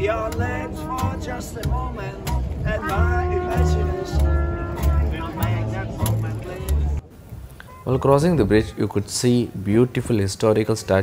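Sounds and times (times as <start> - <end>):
plucked bass notes: 0.0 - 7.0
street band playing upbeat tune: 0.0 - 7.0.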